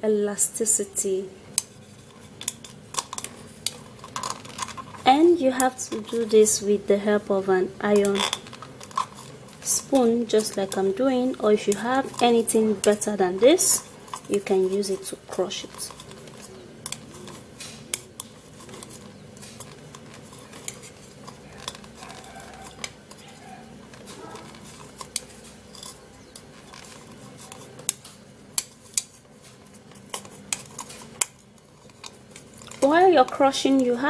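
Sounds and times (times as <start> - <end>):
spoon crushing tablets in a bowl: 1.5 - 34.0.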